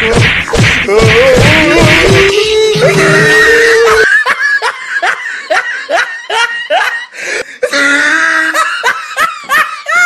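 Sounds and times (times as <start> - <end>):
loud laughter: 1.3 - 10.0.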